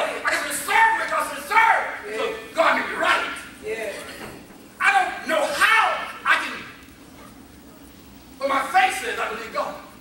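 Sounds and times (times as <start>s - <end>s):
man preaching into microphone: 0.0s - 3.7s, 4.8s - 6.8s, 8.4s - 9.9s.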